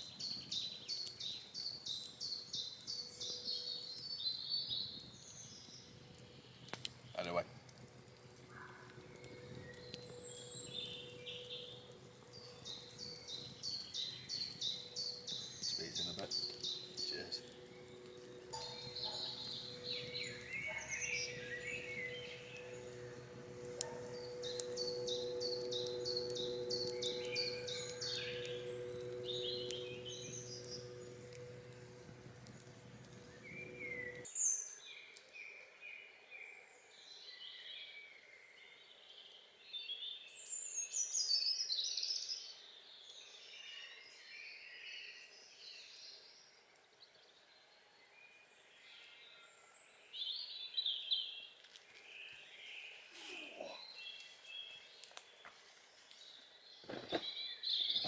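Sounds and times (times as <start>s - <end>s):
songbirds singing and calling: 0.0s - 58.0s
steady low hum: 5.8s - 34.3s.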